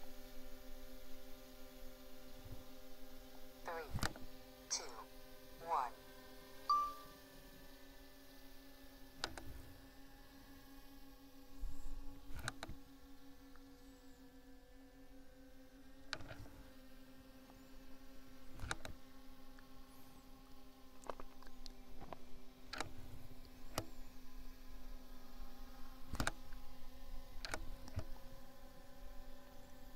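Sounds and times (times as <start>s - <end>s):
short controller beep: 6.7s - 7.2s.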